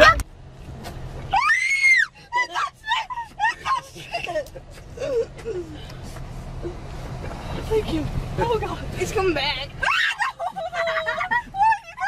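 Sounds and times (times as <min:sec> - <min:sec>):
woman screaming: 0:01.3 - 0:03.8, 0:09.8 - 0:12.0.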